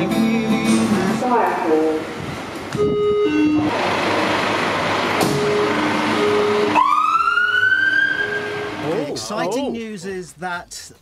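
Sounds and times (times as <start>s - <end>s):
fire engine siren: 2.8s - 9.0s.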